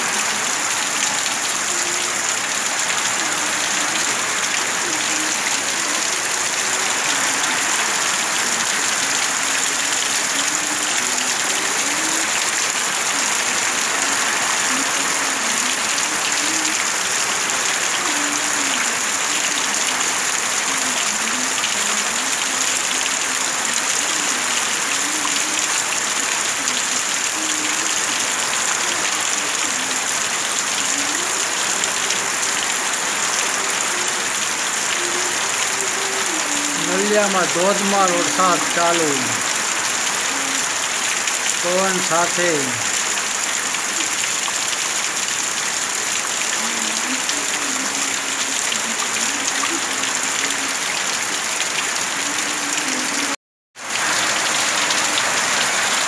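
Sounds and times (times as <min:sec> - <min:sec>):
heavy rain: 0:00.0 - 0:56.0.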